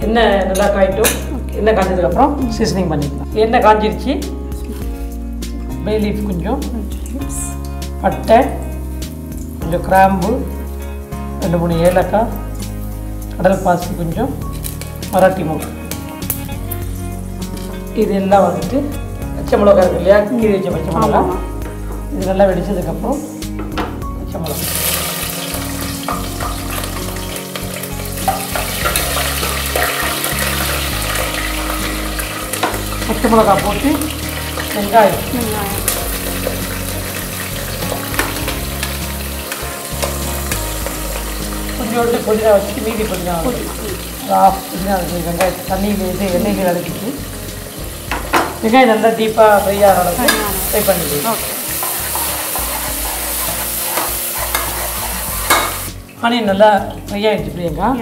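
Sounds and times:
spices sizzling in hot oil: 0:00.0 - 0:58.0
metal ladle scraping pot: 0:51.4 - 0:56.0.

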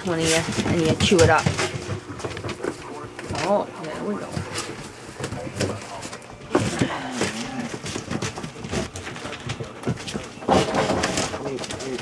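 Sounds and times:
paper rustling and crinkling: 0:00.0 - 0:12.0.

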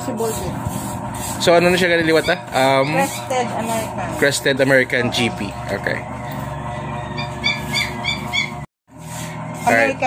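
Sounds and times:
guinea pig squeaking: 0:01.8 - 0:03.7, 0:06.3 - 0:08.7.

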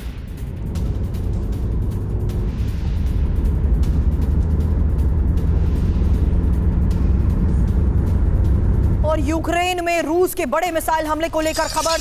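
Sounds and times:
truck engine rumbling: 0:00.0 - 0:10.2
background music: 0:00.0 - 0:12.0.

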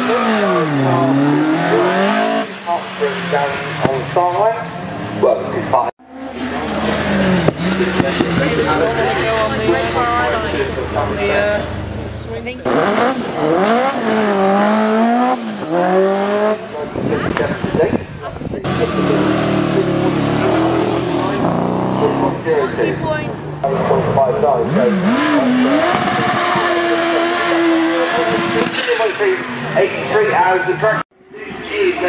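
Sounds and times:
race car engines revving: 0:00.0 - 0:32.0.

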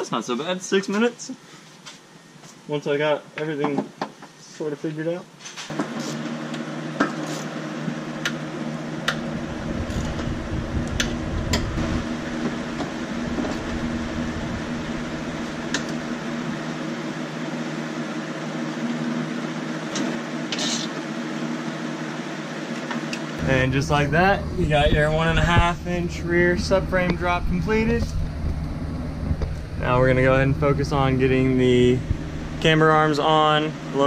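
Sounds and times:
steady mechanical hum: 0:00.0 - 0:34.0.

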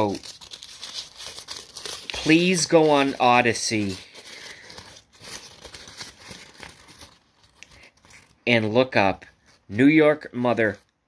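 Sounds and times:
crinkling rustling handling noise: 0:00.0 - 0:11.0.

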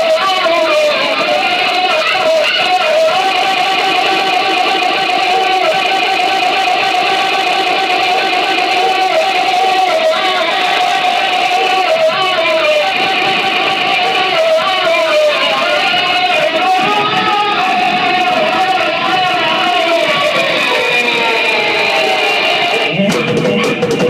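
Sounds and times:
distorted droning noise music: 0:00.0 - 0:24.0.

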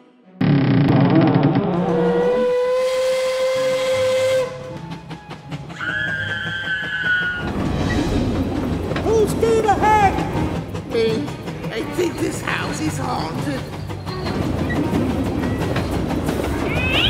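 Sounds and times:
steam train whistle: 0:02.0 - 0:04.9.

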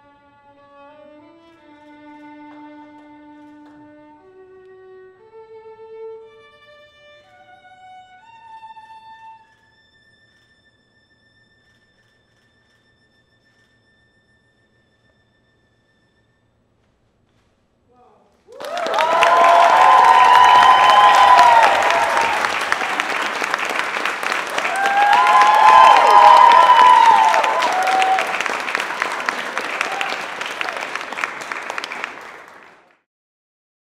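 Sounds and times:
audience cheering: 0:18.5 - 0:32.9
audience applauding: 0:18.5 - 0:33.0.

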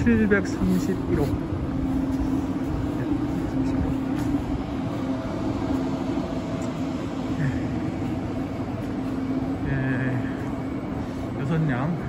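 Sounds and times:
electric train humming: 0:00.0 - 0:12.0.

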